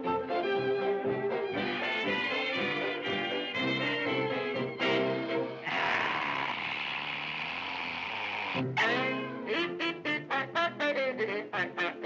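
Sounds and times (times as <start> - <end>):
jazzy band music: 0.0 - 5.6.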